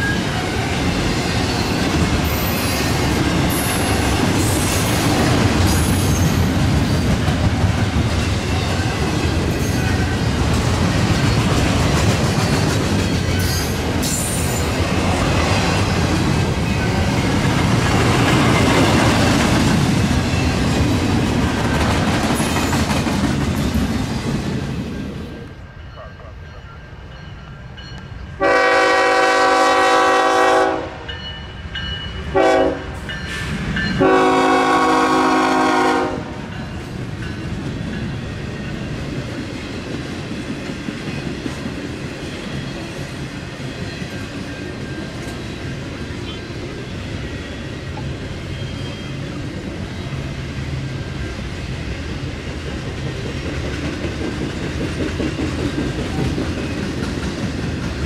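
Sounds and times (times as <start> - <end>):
wheels clattering on rails: 0.0 - 25.2, 52.0 - 58.0
train rumbling past: 0.0 - 58.0
locomotive air horn blasts: 28.4 - 31.1, 32.3 - 33.0, 34.0 - 36.4.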